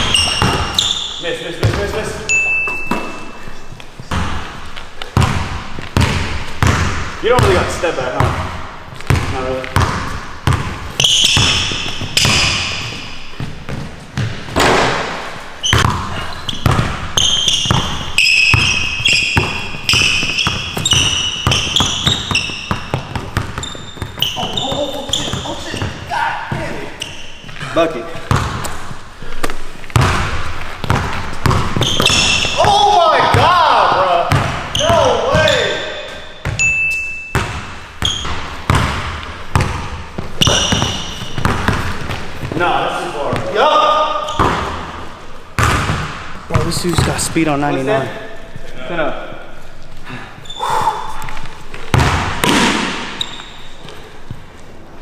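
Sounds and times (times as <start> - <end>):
basketball bouncing on wood floor: 0.0 - 1.0, 1.6 - 2.0, 4.0 - 27.1, 28.3 - 28.9, 29.9 - 35.6, 36.4 - 36.7, 37.3 - 42.6, 43.2 - 43.6, 44.2 - 45.0, 45.6 - 47.3, 51.7 - 53.7
sneakers squeaking on court: 0.0 - 48.4, 49.7 - 54.9.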